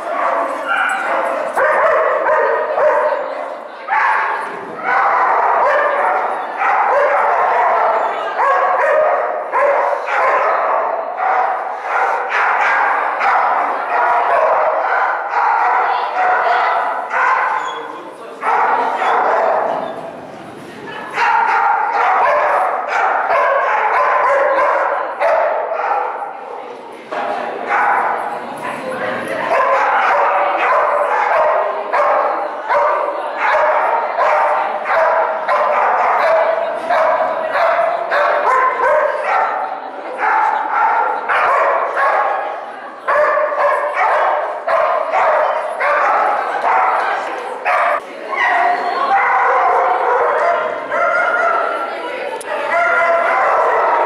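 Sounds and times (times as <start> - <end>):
dog barking and yipping: 0.2 - 3.0, 17.1 - 17.6, 47.7 - 48.0.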